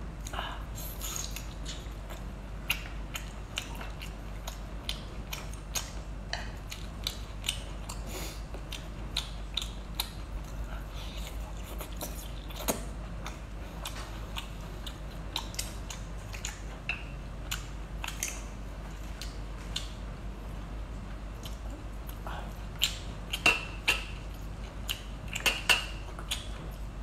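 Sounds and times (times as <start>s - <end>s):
steady low hum: 0.0s - 27.0s
wet chewing and mouth smacks: 0.3s - 20.0s, 20.9s - 26.9s.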